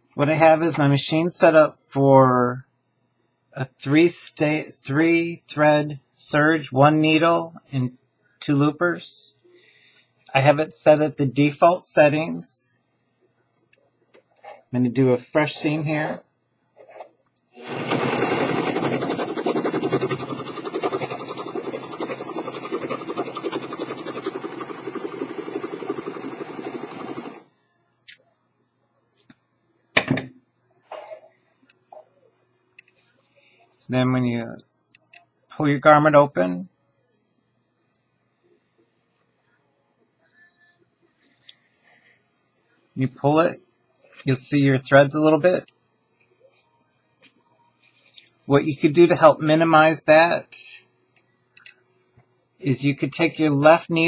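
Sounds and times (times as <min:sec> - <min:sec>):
serger sewing machine running: 0:17.6 - 0:27.5.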